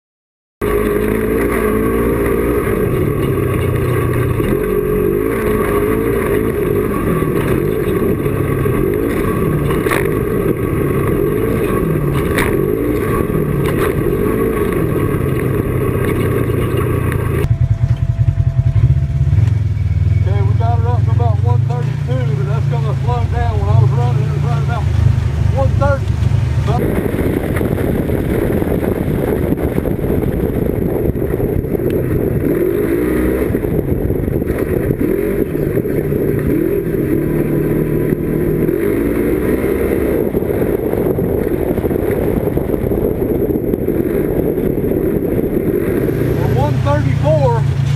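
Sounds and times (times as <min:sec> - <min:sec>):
heavy wind noise: 0:00.6 - 0:47.9
low wavering drone: 0:00.6 - 0:47.9
off-road vehicle engine running hard: 0:00.6 - 0:47.9.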